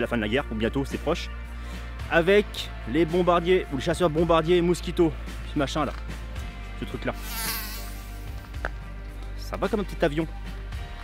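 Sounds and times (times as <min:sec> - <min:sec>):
background music: 0:00.0 - 0:11.0
insect buzzing: 0:07.2 - 0:08.6.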